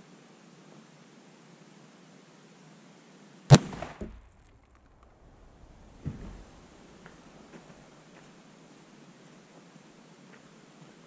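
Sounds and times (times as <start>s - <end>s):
soft thump: 3.5s - 6.7s
rifle shot: 3.5s - 7.1s
sharp bang: 3.5s - 7.1s.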